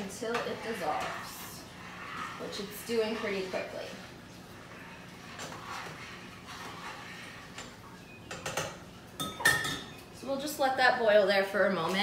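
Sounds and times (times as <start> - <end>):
spoon clinking and scraping pot: 4.6 - 10.0.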